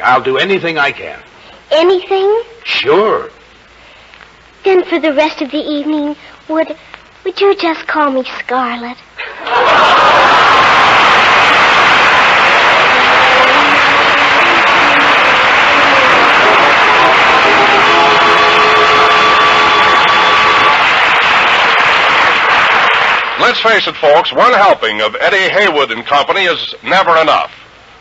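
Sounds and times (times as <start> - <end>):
audience laughing and applauding: 9.2 - 23.6
orchestra playing: 12.4 - 21.0.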